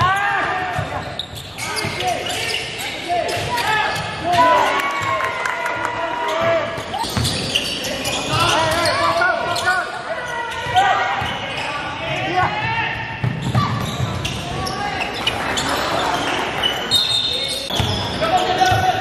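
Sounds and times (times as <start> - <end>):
sneakers squeaking on floor: 0.0 - 5.1, 6.2 - 19.0.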